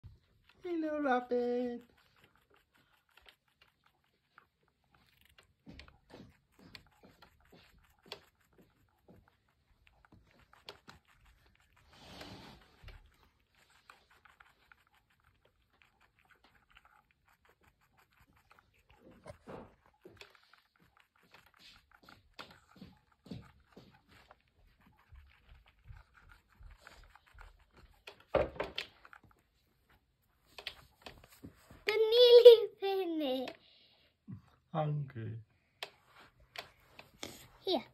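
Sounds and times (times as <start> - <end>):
rabbit chewing food: 0.0 - 34.6
rustles and scrapes on plastic dish: 1.8 - 15.8.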